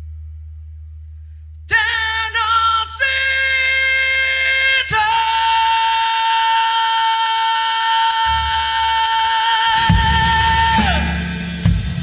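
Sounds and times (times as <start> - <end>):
man singing long high note: 1.7 - 11.4.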